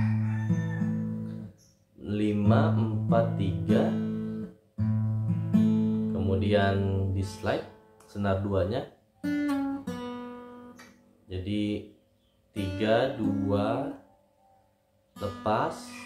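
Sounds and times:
fingerpicked acoustic guitar: 0.0s - 8.6s, 9.2s - 11.1s, 12.5s - 14.1s, 15.1s - 16.0s.

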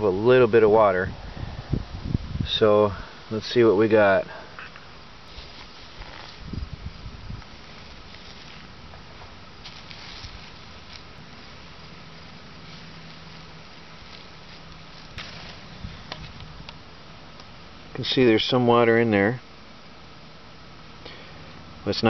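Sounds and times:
plastic wrap being handled: 7.5s - 11.7s, 12.6s - 16.4s.

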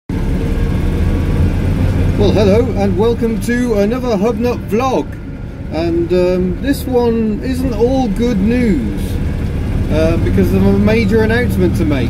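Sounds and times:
small car engine droning: 0.1s - 12.0s.

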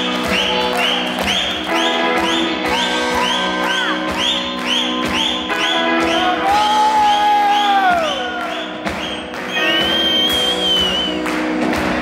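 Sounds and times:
rock band playing loudly: 0.0s - 12.0s.

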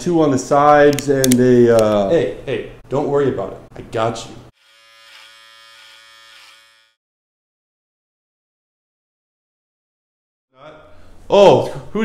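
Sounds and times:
electric hair clippers buzzing: 4.6s - 7.0s.

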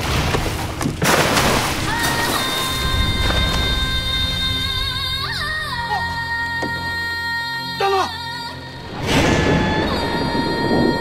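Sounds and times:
bodies splashing into water: 0.0s - 3.8s
music with long held tones: 1.9s - 11.0s.

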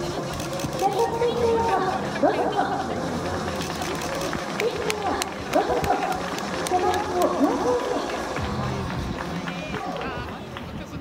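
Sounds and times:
outdoor ambience: 0.0s - 11.0s
people talking in background: 0.0s - 11.0s.

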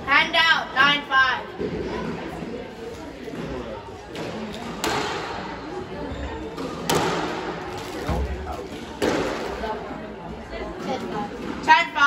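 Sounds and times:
squash ball hits echoing: 4.1s - 5.8s, 6.4s - 9.8s.

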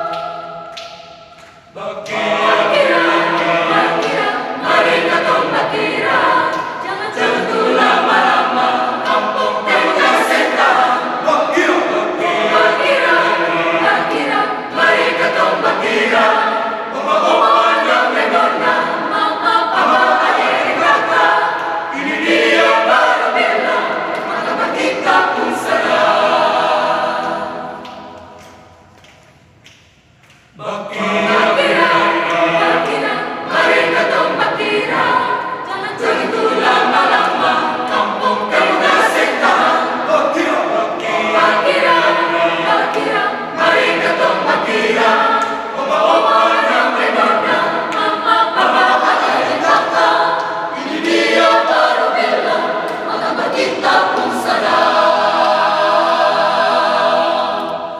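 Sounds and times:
mixed choir singing a cappella: 0.0s - 28.9s, 30.5s - 57.9s.

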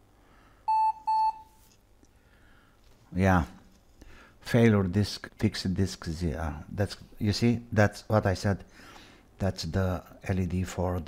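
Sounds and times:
short high-pitched computer beeps: 0.7s - 1.5s.

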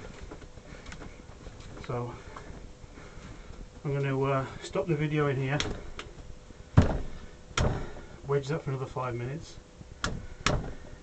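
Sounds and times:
clay thudding on bench: 6.8s - 8.0s, 10.0s - 10.8s.

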